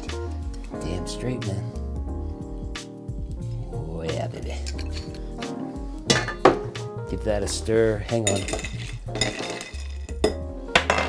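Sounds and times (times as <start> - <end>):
background music: 0.0 - 11.0
ice cubes clinking in a glass: 8.3 - 11.0.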